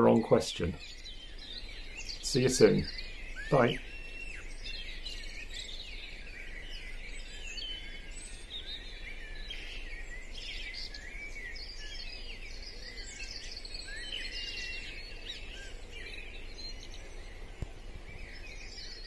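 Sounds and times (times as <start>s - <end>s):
birds singing in chorus: 0.0s - 19.0s.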